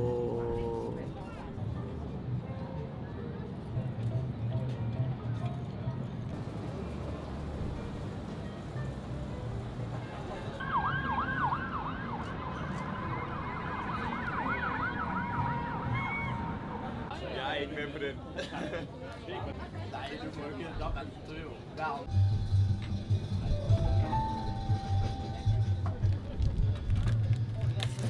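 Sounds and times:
low city rumble: 0.0 - 28.0
distant sirens yelping: 10.6 - 17.0.

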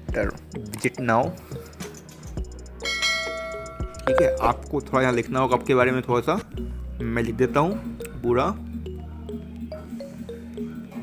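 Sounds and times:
bright bell chime: 2.8 - 4.7.

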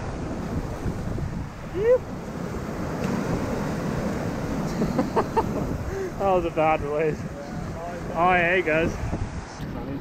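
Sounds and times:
surf washing over rocks: 0.0 - 10.0
wind buffeting microphone: 0.0 - 10.0.

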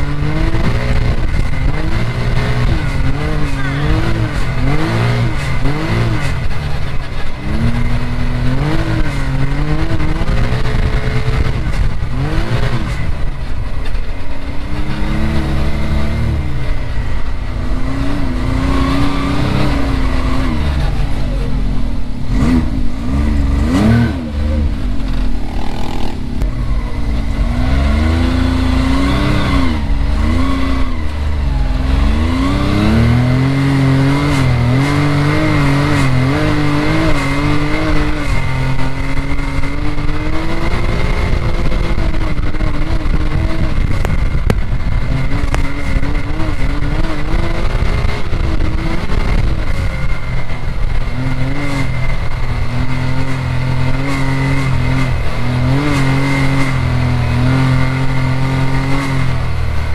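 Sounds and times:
dirt noise: 0.0 - 59.9
engine revving: 0.0 - 59.9
rushing wind: 0.0 - 59.9.

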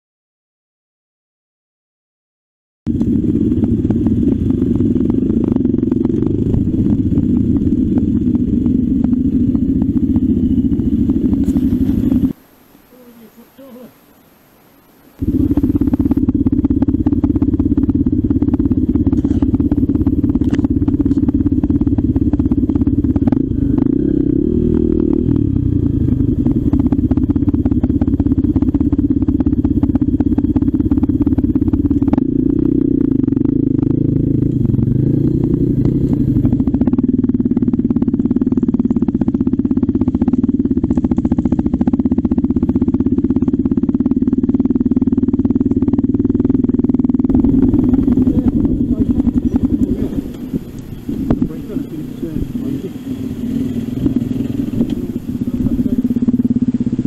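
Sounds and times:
motorcycle engine running under load: 2.9 - 13.9, 15.1 - 57.0.

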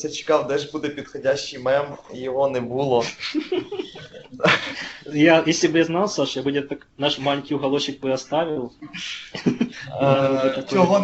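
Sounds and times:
person laughing: 3.0 - 5.0.

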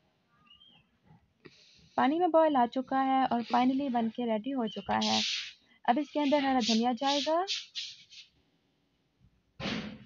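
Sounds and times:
faint hiss: 5.0 - 8.4.

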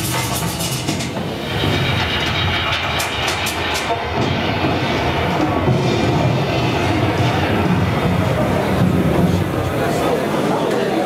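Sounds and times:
rumbling electronic drone: 0.0 - 10.4.

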